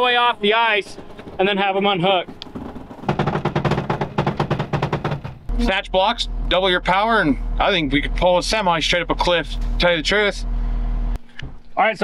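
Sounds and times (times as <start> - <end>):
rapid mechanical clatter: 0.0 - 5.5
low steady hum: 5.4 - 12.0.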